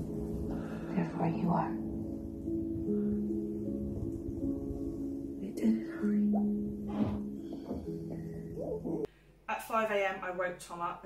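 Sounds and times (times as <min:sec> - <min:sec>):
soft background music: 0:00.0 - 0:09.1.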